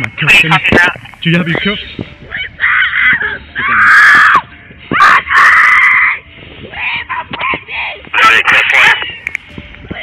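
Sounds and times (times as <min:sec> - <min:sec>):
woman screaming: 0:02.3 - 0:06.2.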